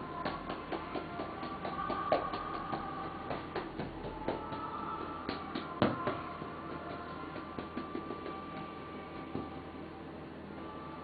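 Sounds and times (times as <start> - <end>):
soft background music: 0.0 - 11.0
massage tools clicking and tapping: 0.2 - 8.7.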